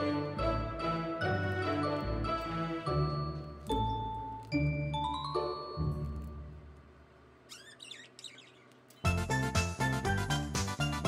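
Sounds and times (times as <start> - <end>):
budgerigar chirping: 7.5 - 9.2.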